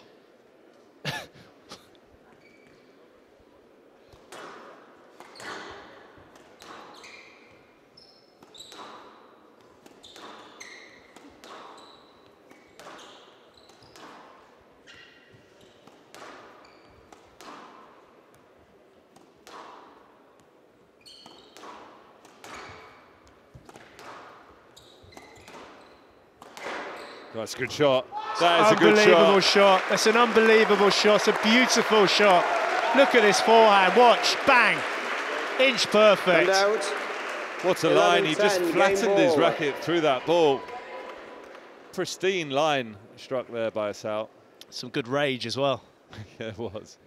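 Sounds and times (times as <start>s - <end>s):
court shoes squeaking: 2.2s - 3.2s, 4.0s - 27.8s
squash ball hit by rackets: 6.3s - 7.0s, 8.4s - 11.8s, 15.8s - 17.9s, 19.1s - 20.0s, 21.2s - 24.4s, 26.4s - 27.0s.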